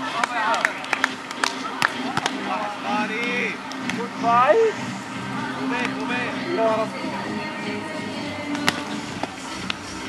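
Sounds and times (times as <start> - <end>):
people calling and talking: 0.0 - 10.0.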